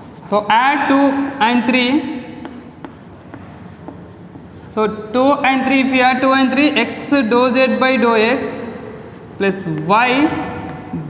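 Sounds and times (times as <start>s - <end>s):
chalk writing on chalkboard: 0.0s - 11.0s
chalk tapping on board: 0.6s - 4.8s, 9.2s - 11.0s.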